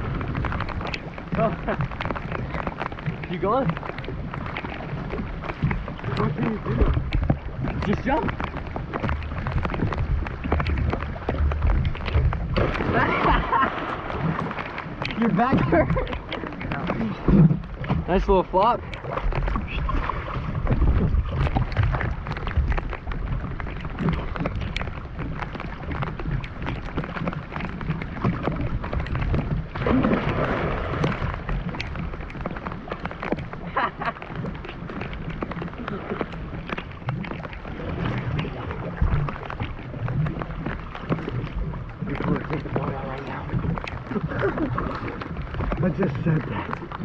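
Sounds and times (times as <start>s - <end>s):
heavy rain on water: 0.0s - 47.0s
low rumble: 0.0s - 47.0s
water sloshing against camera: 0.0s - 47.0s
water splash: 0.0s - 47.0s.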